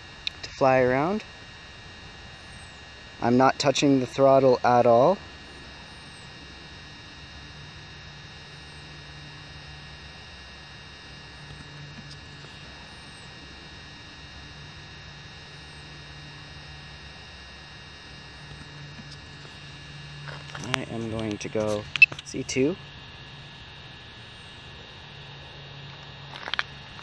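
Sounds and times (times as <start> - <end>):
low hum: 0.0 - 27.0
man speaking: 20.6 - 22.8.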